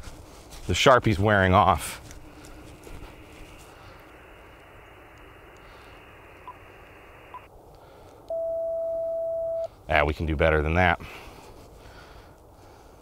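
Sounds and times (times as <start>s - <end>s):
radio receiver hiss: 2.4s - 7.5s
steady radio beep: 3.0s - 7.5s, 8.3s - 9.7s.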